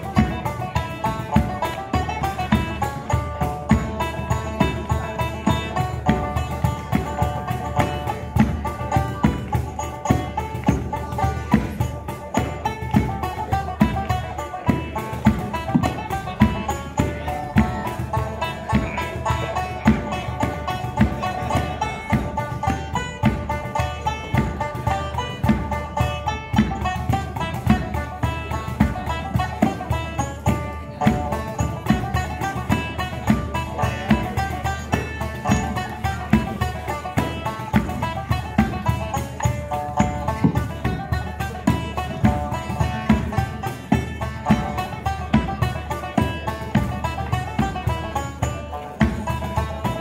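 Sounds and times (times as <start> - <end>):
banjo picking fast reel: 0.0 - 50.0
cajon and bodhran beats: 0.0 - 50.0.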